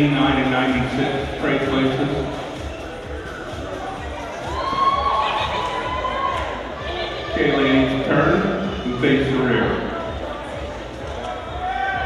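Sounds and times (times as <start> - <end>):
background music with bass beat: 0.0 - 12.0
spectator cheering call: 4.3 - 8.5.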